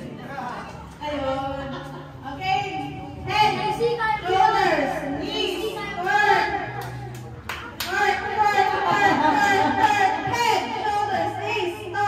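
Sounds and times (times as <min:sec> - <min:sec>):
children shouting and chattering: 0:00.0 - 0:12.0.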